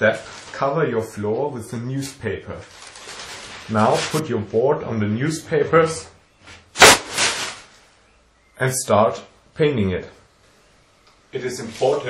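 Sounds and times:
newspaper rustle: 0.0 - 0.7, 2.0 - 4.4, 6.8 - 7.9.

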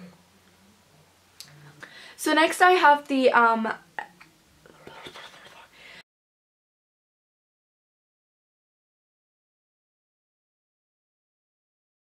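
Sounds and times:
woman whispering: 4.0 - 5.8.

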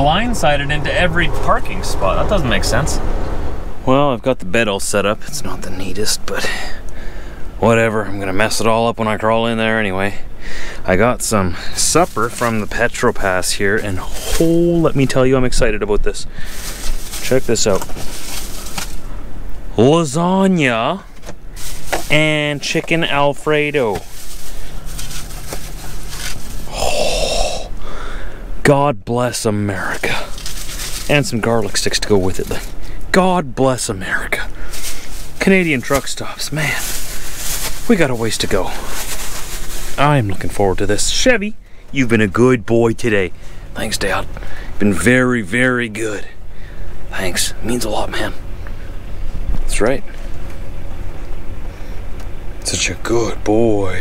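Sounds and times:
low hum: 0.0 - 4.9
plastic bag rustling: 11.6 - 19.2, 21.2 - 27.0, 29.8 - 32.9, 34.3 - 41.3.

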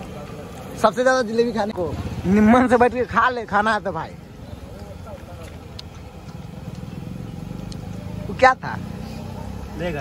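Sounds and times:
vehicle engine running: 0.0 - 10.0.

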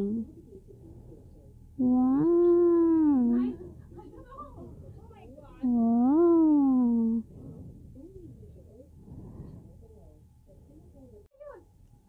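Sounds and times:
faint indistinct voices: 0.0 - 11.8
steady low hum: 0.0 - 12.0.

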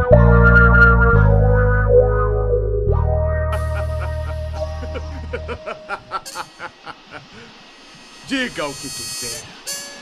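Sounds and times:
heavy bass beat: 0.0 - 6.2
faint steady buzz: 3.6 - 10.0.

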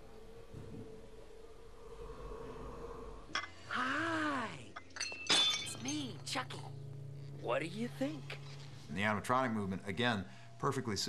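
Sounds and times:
low steady hum: 0.0 - 11.0
glass breaking: 4.8 - 6.2.

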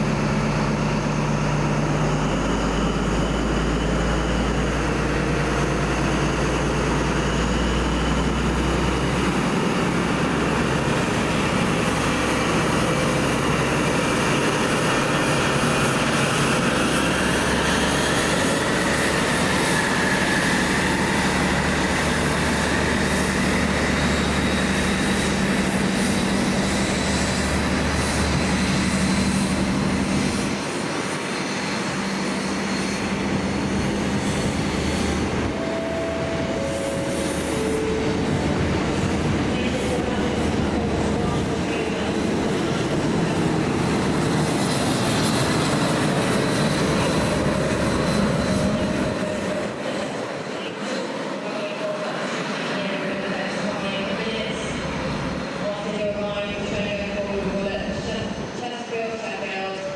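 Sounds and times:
diesel locomotive engine drone: 0.0 - 59.9
train coaches rolling on rails: 0.0 - 59.9.

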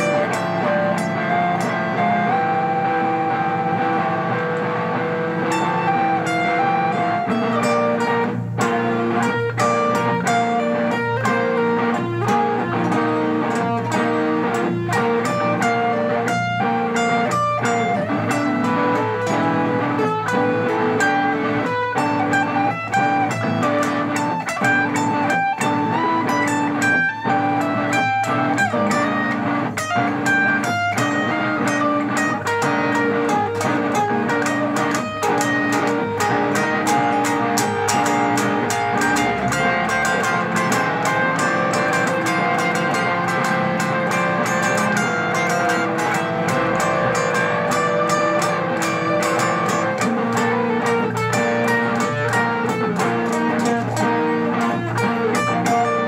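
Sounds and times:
electric guitar lead: 0.0 - 56.0.

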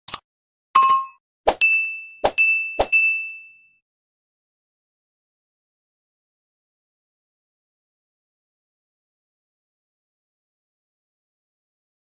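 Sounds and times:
bright bell ding: 0.8 - 3.8.

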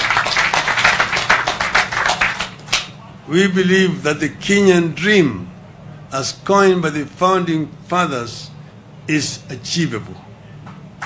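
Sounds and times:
audience clapping: 0.0 - 2.9.

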